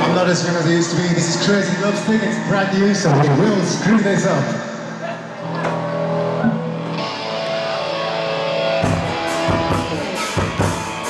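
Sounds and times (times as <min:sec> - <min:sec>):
guitar: 0:00.0 - 0:11.0
drum kit with kick and cymbals: 0:08.8 - 0:11.0.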